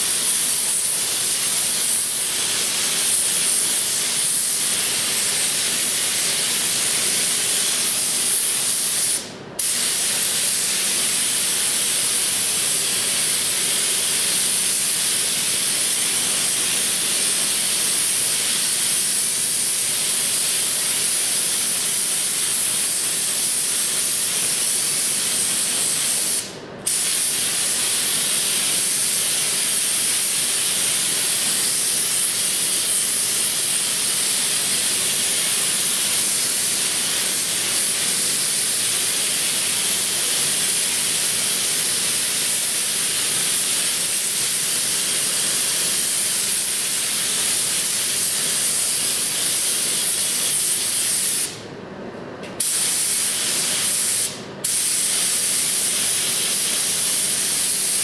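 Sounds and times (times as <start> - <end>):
spray gun hissing: 0.0 - 51.6, 52.6 - 58.0.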